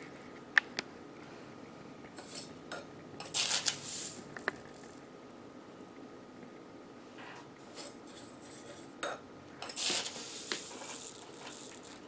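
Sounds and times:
sand scraping and hissing: 9.8 - 12.0.

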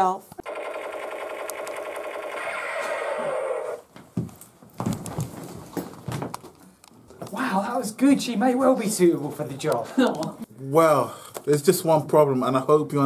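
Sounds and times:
toy gun electronic rapid-fire effect: 0.4 - 3.8.

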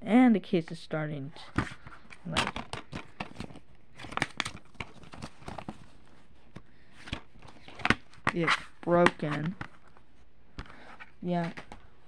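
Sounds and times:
paper insert rustling: 1.6 - 11.8
plastic case clicks: 2.3 - 5.7.

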